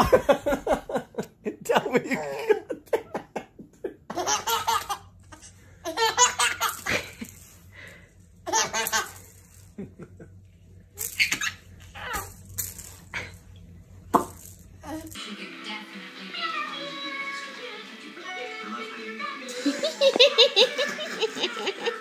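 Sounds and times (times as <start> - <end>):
baby laughing: 4.1 - 7.2, 8.5 - 9.2, 11.0 - 12.3, 19.5 - 22.0.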